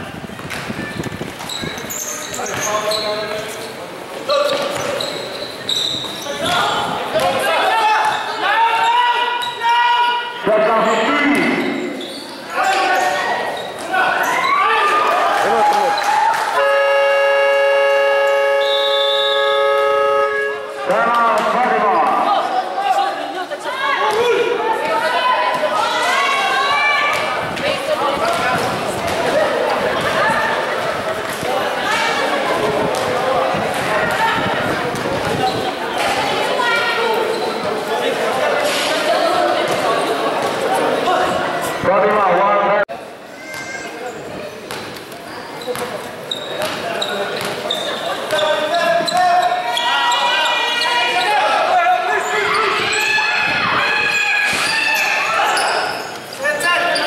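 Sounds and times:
scoreboard buzzer horn: 0:16.6 - 0:20.8
basketballs bouncing on court: 0:27.1 - 0:31.6, 0:44.6 - 0:49.4.

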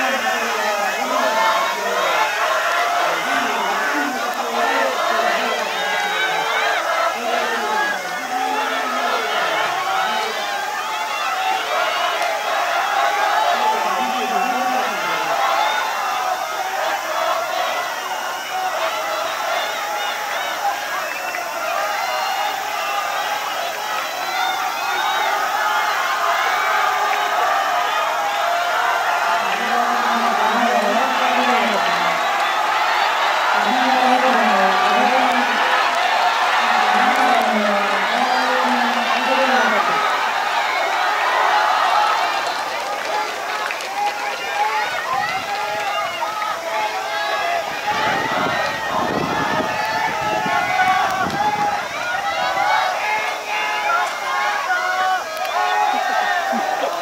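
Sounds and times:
spectators shouting and cheering: 0:00.0 - 0:57.0.

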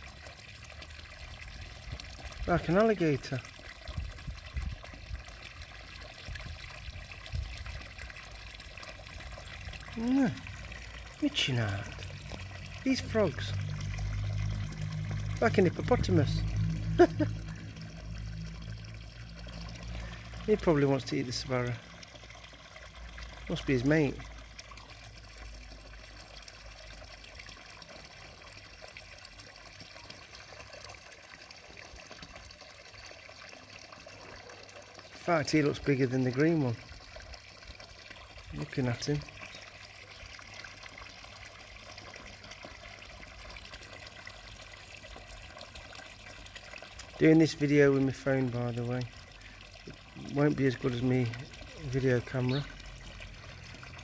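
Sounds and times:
water trickling in pond: 0:00.0 - 0:54.0
low rumbles: 0:10.4 - 0:20.6.

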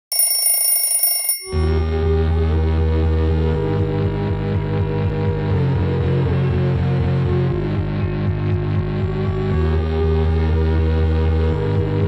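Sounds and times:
low bass music drone: 0:01.7 - 0:12.0.

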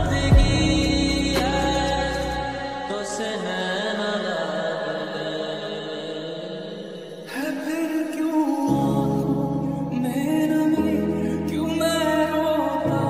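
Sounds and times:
bass and beat: 0:00.0 - 0:02.4
chant-like vocal: 0:00.0 - 0:13.0
reverberant lofi music: 0:00.0 - 0:13.0.

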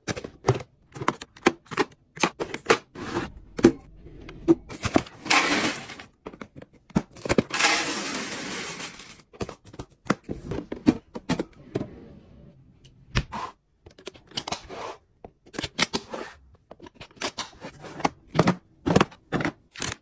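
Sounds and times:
cereal pouring into plastic container: 0:07.5 - 0:09.2.

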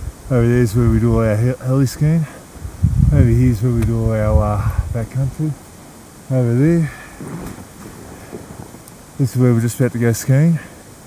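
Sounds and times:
wind buffeting microphone: 0:00.0 - 0:05.6, 0:06.5 - 0:09.3
steady hiss: 0:00.0 - 0:11.0.

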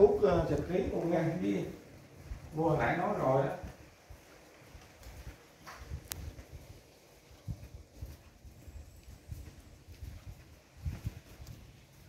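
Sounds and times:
footsteps on tiles: 0:00.0 - 0:12.0.

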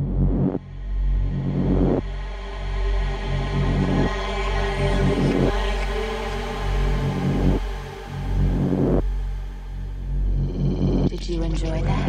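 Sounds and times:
noise sweep: 0:00.0 - 0:11.2
deep bass rumble: 0:00.0 - 0:12.0.

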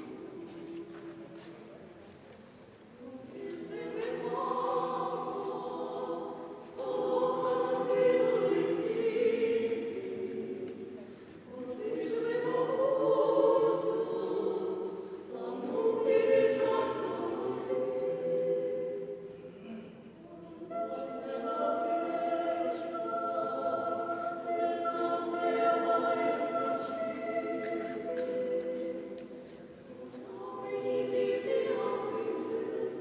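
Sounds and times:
choir singing a cappella: 0:00.0 - 0:01.4, 0:02.8 - 0:33.0.

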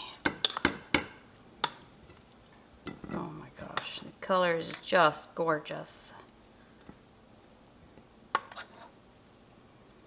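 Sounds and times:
plastic spatula clicking on pan: 0:01.6 - 0:01.9.

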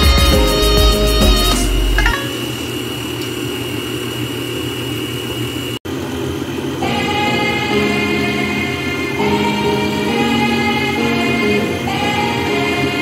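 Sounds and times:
background music: 0:00.0 - 0:02.3.

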